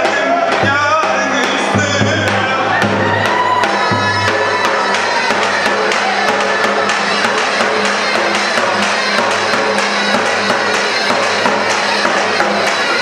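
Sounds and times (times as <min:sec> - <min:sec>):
live folk dance music: 0:00.0 - 0:13.0.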